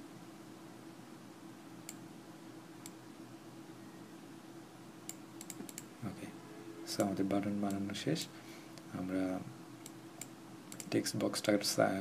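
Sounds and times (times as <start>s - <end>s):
keyboard typing: 5.1s - 5.9s, 9.8s - 11.0s.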